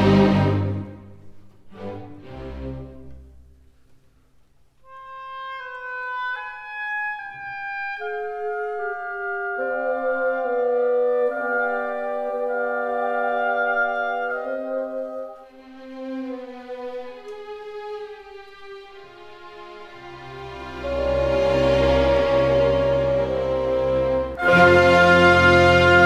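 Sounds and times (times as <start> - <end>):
slow instrumental music: 4.8 - 26.0.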